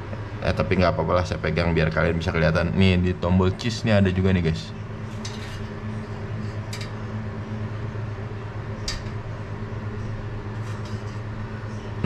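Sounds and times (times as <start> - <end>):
low machine hum: 0.0 - 12.0.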